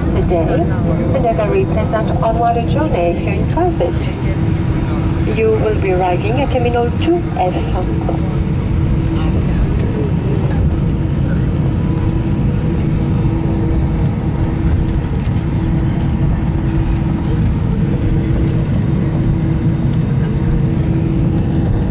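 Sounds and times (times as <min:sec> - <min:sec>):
airplane engine rumble in cabin: 0:00.0 - 0:21.9
constant hum: 0:00.0 - 0:21.9.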